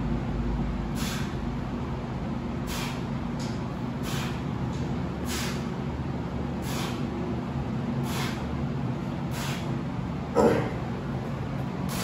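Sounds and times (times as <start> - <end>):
steady low hum: 0.0 - 12.0
sharp hissing breaths: 0.9 - 1.4, 2.6 - 3.1, 3.9 - 4.5, 5.2 - 5.8, 6.6 - 7.1, 8.0 - 8.6, 9.2 - 9.8.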